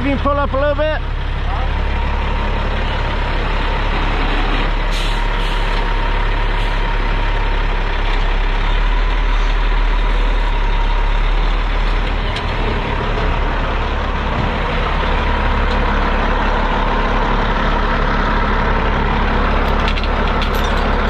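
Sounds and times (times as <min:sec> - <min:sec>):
diesel truck engine idling: 0:00.0 - 0:21.0.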